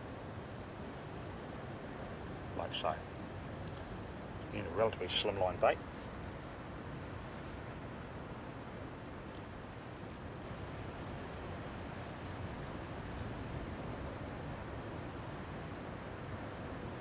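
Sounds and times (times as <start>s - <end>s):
wind rumble on microphone: 0.0s - 17.0s.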